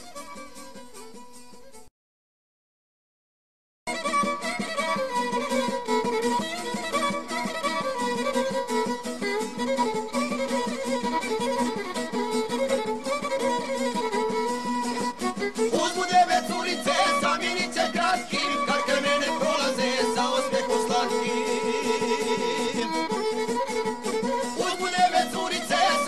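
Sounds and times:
folk music with violin: 0:00.0 - 0:01.9, 0:03.9 - 0:26.0.

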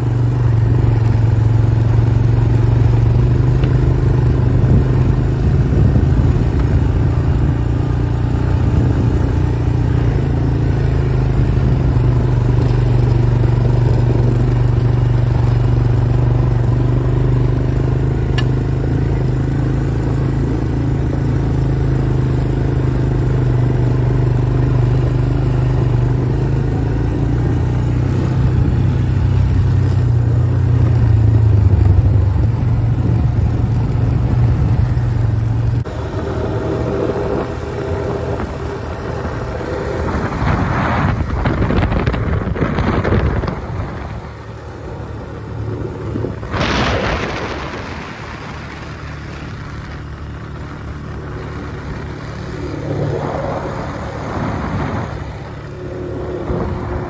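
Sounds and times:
atv engine running: 0:00.0 - 0:57.0.

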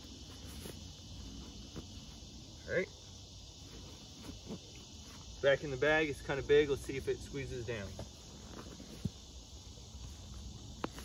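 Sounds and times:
insects humming: 0:00.0 - 0:11.0.

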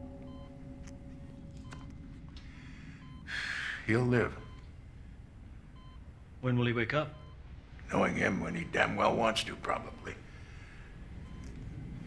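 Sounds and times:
low room hum: 0:00.0 - 0:12.0
medical monitor beeping: 0:00.0 - 0:12.0
man breathing loudly: 0:02.4 - 0:03.9, 0:10.3 - 0:11.0
man speaking: 0:03.8 - 0:04.5, 0:07.8 - 0:10.3.

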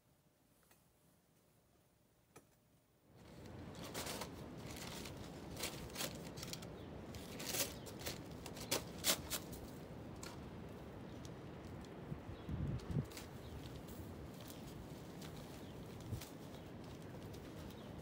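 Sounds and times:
paper sacks rustling and crinkling: 0:03.2 - 0:09.6, 0:13.0 - 0:18.0.

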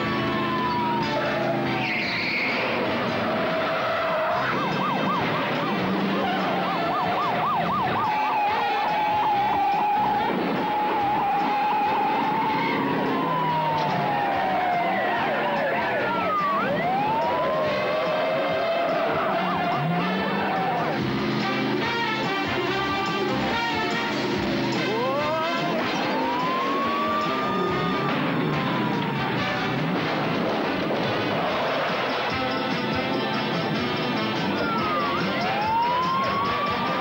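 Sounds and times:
police siren: 0:00.0 - 0:37.0.

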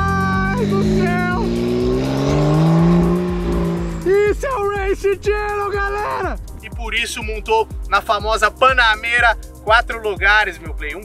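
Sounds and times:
car engine accelerating hard: 0:00.0 - 0:06.6
background music with vocals: 0:00.0 - 0:11.0.

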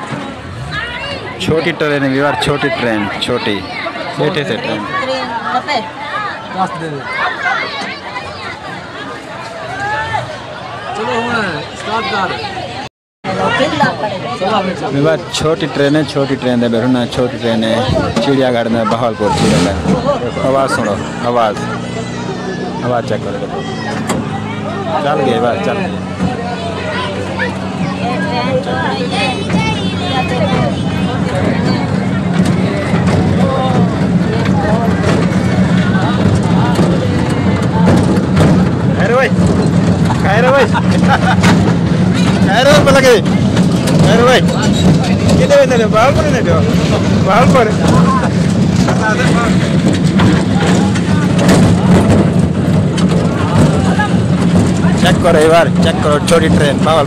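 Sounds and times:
people chattering and calling: 0:00.0 - 0:57.0
miniature train humming: 0:20.0 - 0:57.0.

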